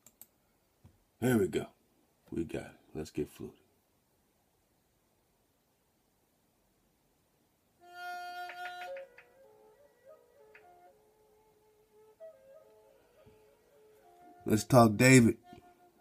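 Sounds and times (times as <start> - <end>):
flute music: 7.8 - 16.0.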